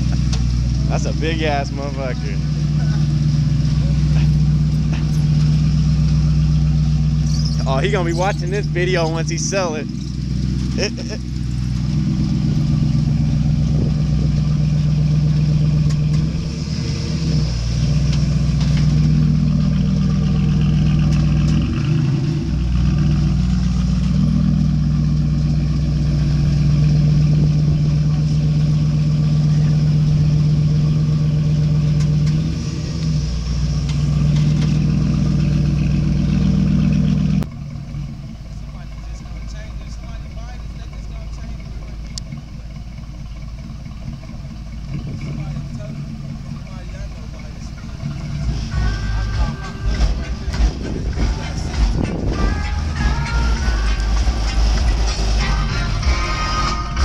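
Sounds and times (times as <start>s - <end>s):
car exhaust drone: 0.0s - 57.0s.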